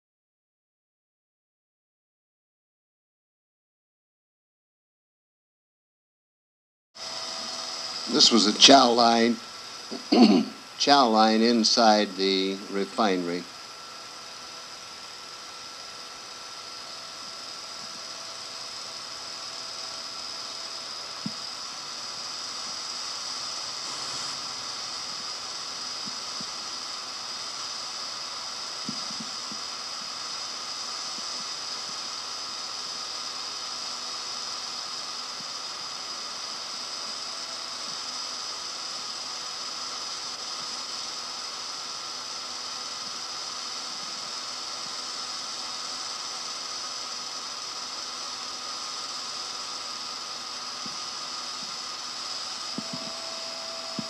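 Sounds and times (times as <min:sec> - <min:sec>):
faint hum tones: 0:07.0 - 0:54.0
tape hiss: 0:07.0 - 0:54.0.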